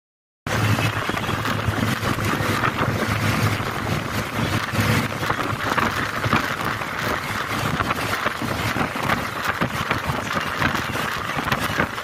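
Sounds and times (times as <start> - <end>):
vehicle rumble at speed: 0.5 - 12.0
wind buffeting microphone: 0.5 - 12.0.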